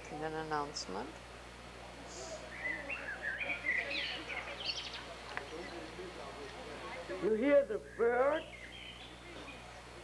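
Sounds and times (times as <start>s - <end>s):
songbird warbling: 2.5s - 5.1s.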